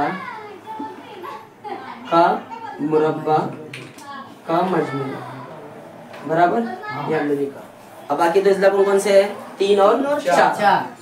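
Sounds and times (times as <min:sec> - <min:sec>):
children's voices: 0:00.0 - 0:02.7, 0:03.9 - 0:08.2.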